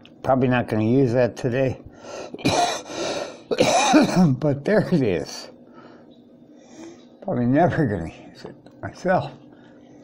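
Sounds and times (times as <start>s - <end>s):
man coughing: 2.4s - 4.4s.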